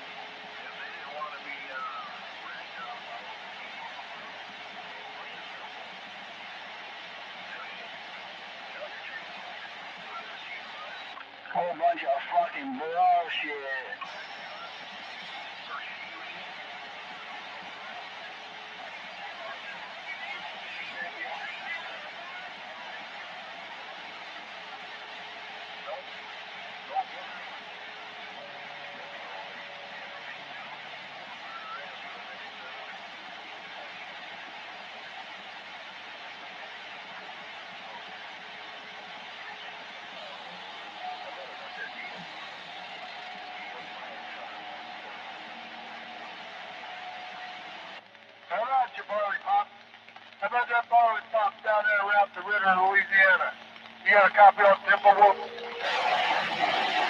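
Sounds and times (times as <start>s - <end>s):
faint distant radio signals: 0.0s - 57.0s
radio static hiss: 0.0s - 57.0s
loud voice over radio: 54.1s - 56.0s.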